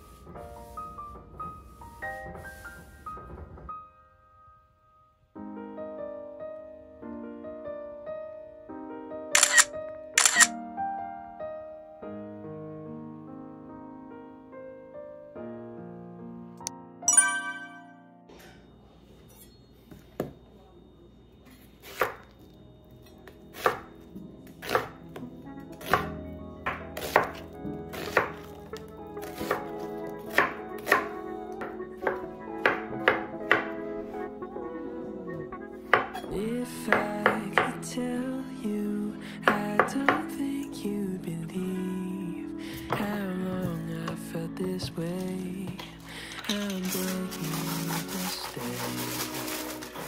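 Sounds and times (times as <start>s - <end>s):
gentle piano music: 0.0s - 18.8s, 22.3s - 50.0s
camera shutter clicks: 9.4s - 10.6s.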